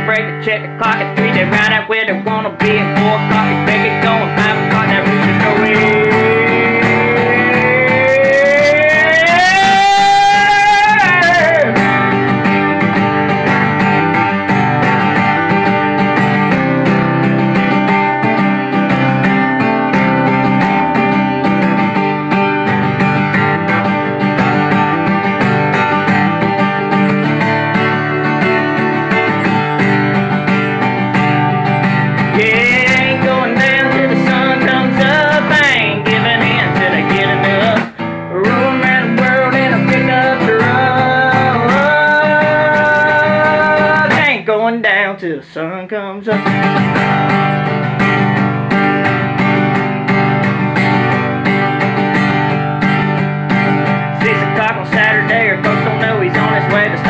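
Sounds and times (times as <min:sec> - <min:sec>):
person singing wordless notes: 0:00.0 - 0:12.1, 0:32.3 - 0:46.6, 0:54.2 - 0:57.0
acoustic guitar strumming: 0:00.0 - 0:57.0.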